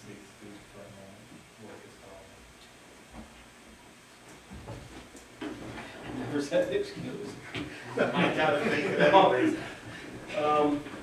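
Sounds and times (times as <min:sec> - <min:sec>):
people shuffling in seats: 0:04.4 - 0:11.0.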